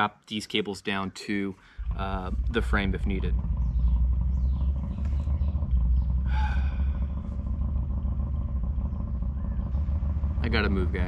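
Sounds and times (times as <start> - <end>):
distant engine rumble: 0.0 - 11.0.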